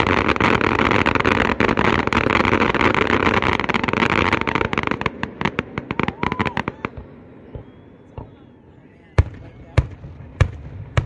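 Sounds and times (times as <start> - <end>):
fireworks bursting: 0.0 - 11.0.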